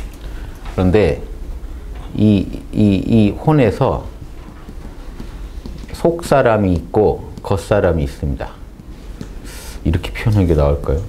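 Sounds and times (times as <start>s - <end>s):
marker writing on whiteboard: 3.2s - 10.4s.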